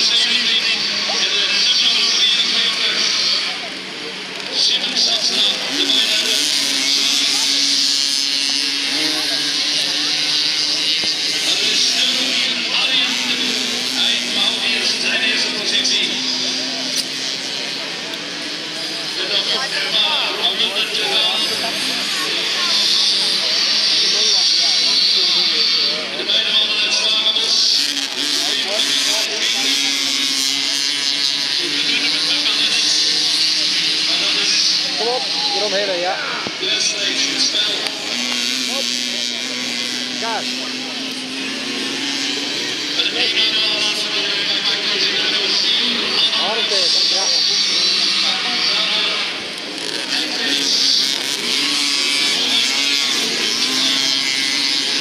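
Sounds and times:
moped engines running hard: 0:00.0 - 0:55.0.

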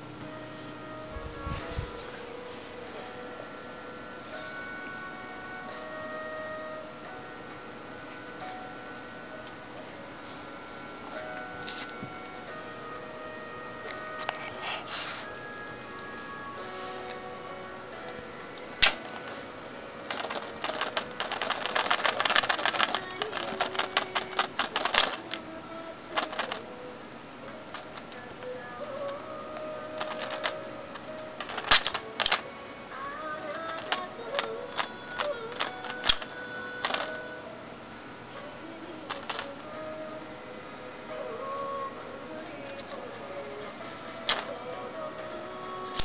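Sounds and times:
faint background tones: 0:00.0 - 0:46.0
plastic cat toy rattling and clicking: 0:18.8 - 0:19.4, 0:20.0 - 0:25.4, 0:26.2 - 0:26.6, 0:27.7 - 0:28.2, 0:30.0 - 0:32.4, 0:33.4 - 0:37.2, 0:39.1 - 0:39.6, 0:44.3 - 0:44.5.

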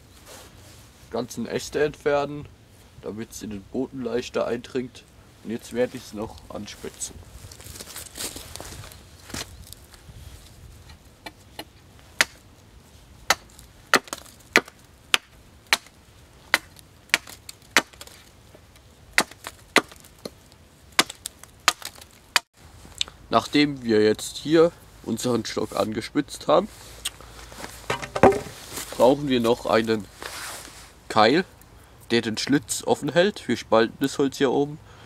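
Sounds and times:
hatchet chopping wood: 0:11.2 - 0:12.4, 0:13.3 - 0:18.2, 0:19.2 - 0:20.4, 0:21.0 - 0:22.5, 0:27.9 - 0:28.5.

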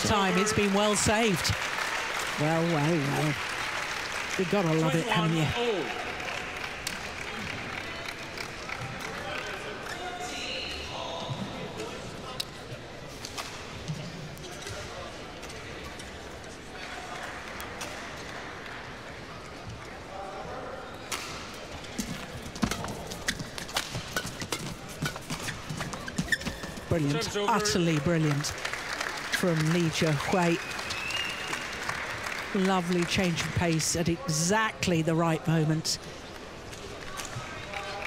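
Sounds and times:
shoes squeaking on court: 0:22.0 - 0:27.7.

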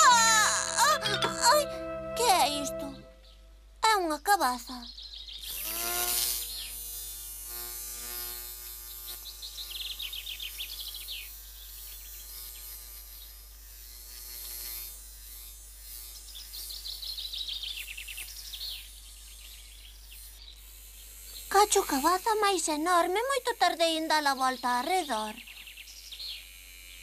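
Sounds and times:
bee buzzing: 0:00.0 - 0:03.1, 0:05.4 - 0:18.2, 0:20.0 - 0:25.4
high falling chirps: 0:00.0 - 0:03.2.

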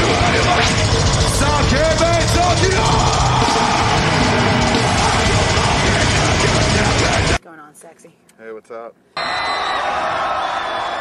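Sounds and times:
crowd cheering and whooping: 0:02.0 - 0:06.0, 0:09.2 - 0:11.0.

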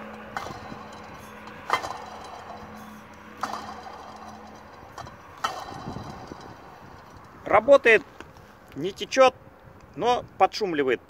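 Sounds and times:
pump bearing whirring: 0:00.0 - 0:08.2.

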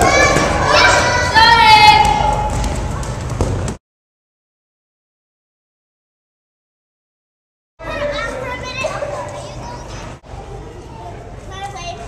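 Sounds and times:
young children chattering: 0:07.8 - 0:12.0.

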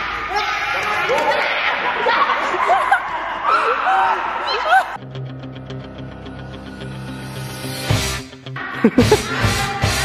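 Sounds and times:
background music with steady beat: 0:05.0 - 0:10.0.

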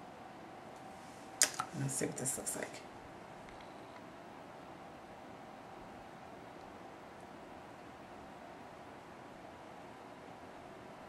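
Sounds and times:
faint steady hiss: 0:00.0 - 0:11.0
thin steady hum: 0:00.0 - 0:11.0.

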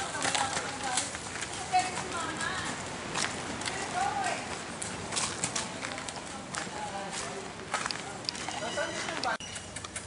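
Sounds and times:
horse hooves on dirt: 0:00.0 - 0:10.0.

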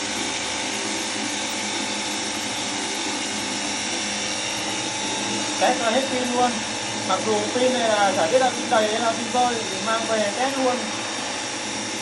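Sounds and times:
pressure washer pump whine: 0:00.0 - 0:12.0.

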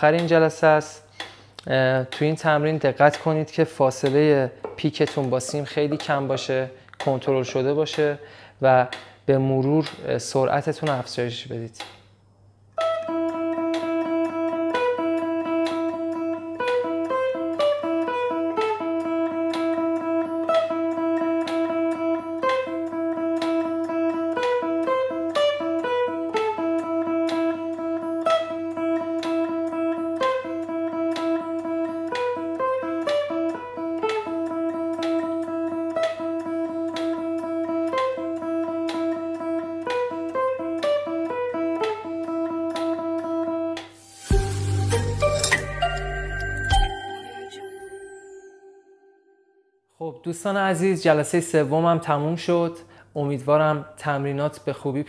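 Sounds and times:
electric guitar picking: 0:12.7 - 0:47.6.

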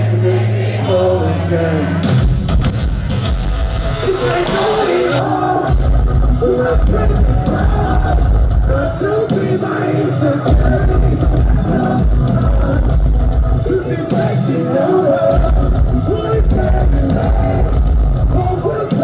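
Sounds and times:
sung lead vocal: 0:00.0 - 0:02.0, 0:04.0 - 0:19.0
bass: 0:00.0 - 0:19.0
distorted guitars: 0:00.0 - 0:19.0
heavy drums: 0:02.0 - 0:19.0.

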